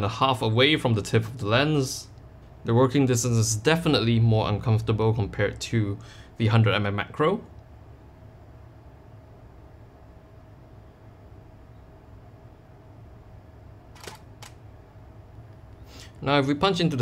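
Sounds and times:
steady hum: 0.0 - 17.0
camera shutter clicks: 14.0 - 14.6.

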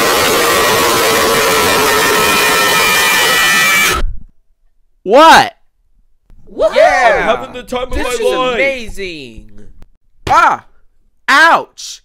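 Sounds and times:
distorted scream sound effect: 0.0 - 4.0.

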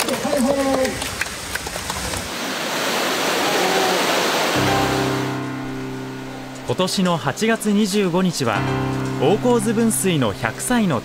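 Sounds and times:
water rushing from sluice gate: 0.0 - 5.4
background music: 4.6 - 11.0.

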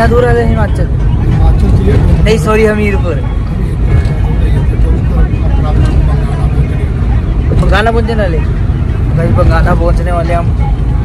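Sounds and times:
road noise: 0.0 - 11.0
vehicle engine rumble: 0.0 - 11.0.

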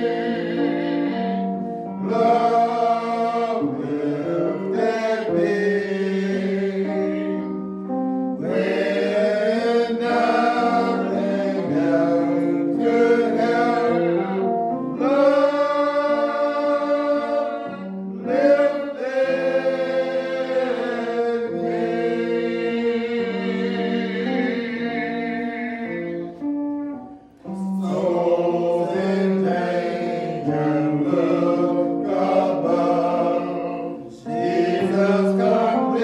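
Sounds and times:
gospel choir singing: 0.0 - 36.0.

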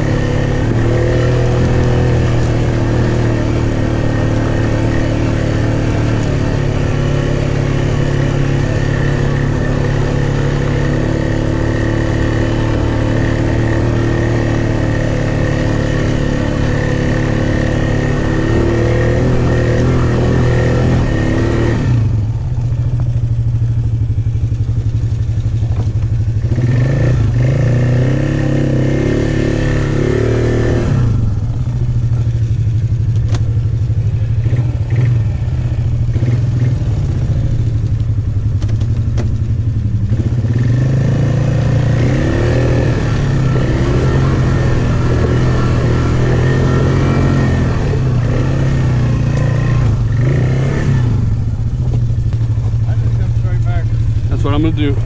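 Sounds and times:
quad engine revving: 0.0 - 55.0.

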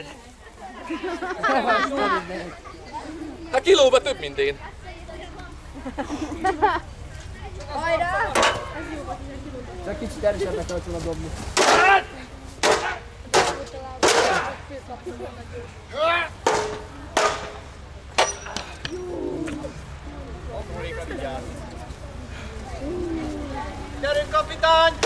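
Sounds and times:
voices: 0.0 - 25.0
weapons striking shields: 8.3 - 8.8, 11.6 - 14.6, 16.4 - 17.6, 18.2 - 19.0.

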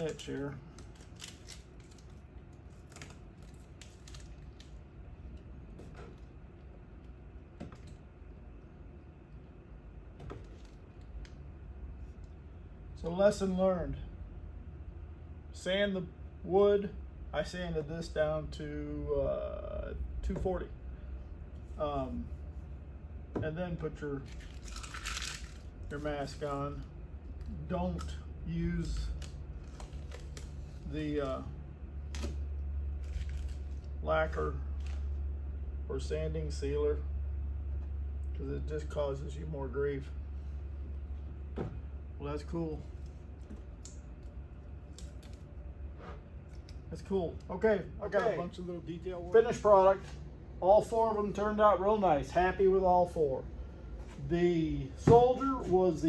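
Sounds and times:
vinyl film peeling crackle: 0.0 - 4.8, 24.2 - 26.8, 28.8 - 31.4, 32.0 - 34.0, 42.9 - 45.5
vinyl peeling clicks and scrapes: 0.0 - 6.2, 28.8 - 30.9
steady low hum: 0.0 - 56.0.

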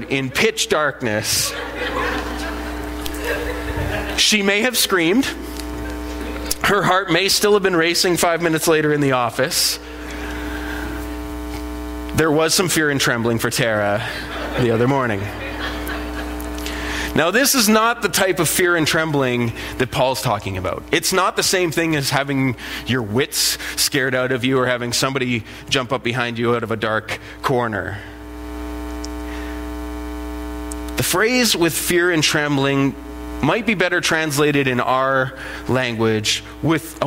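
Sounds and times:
electrical mains hum: 0.0 - 37.0.

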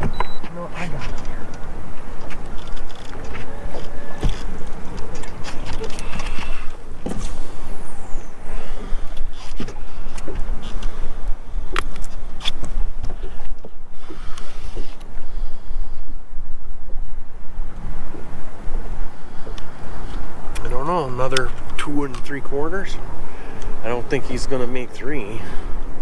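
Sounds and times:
wind buffeting microphone: 0.0 - 26.0
clicks and knocks on boat deck: 2.2 - 7.4.

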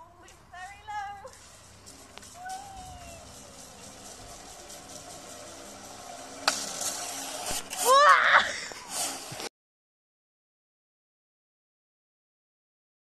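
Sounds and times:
zip wire trolley running: 0.5 - 9.5
gliding squeal: 1.3 - 9.5.

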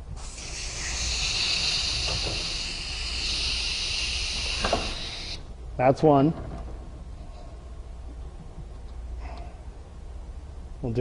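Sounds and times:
compressed air hissing: 0.0 - 5.5.

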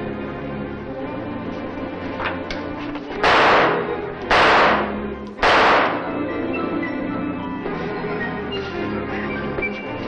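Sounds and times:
dramatic background music: 0.0 - 10.0
gunshots: 3.2 - 6.2.

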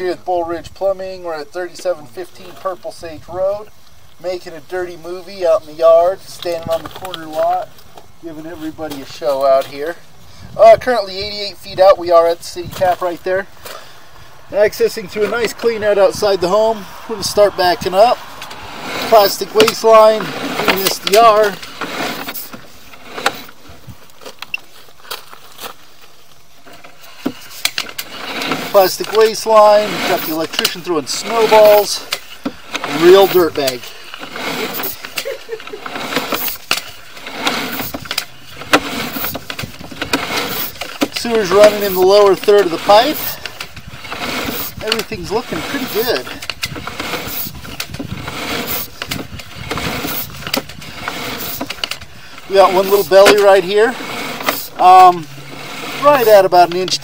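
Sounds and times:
steady noisy background: 0.0 - 57.0.

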